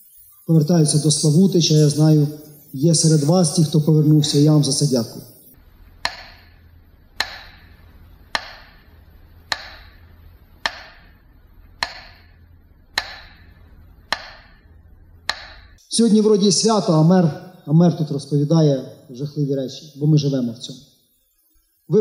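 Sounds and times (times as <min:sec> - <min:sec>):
steady low hum: 0:00.0 - 0:19.3
metronome ticks: 0:06.0 - 0:06.6, 0:07.2 - 0:08.9, 0:09.5 - 0:10.0, 0:10.6 - 0:11.2, 0:11.8 - 0:14.6, 0:15.3 - 0:15.8.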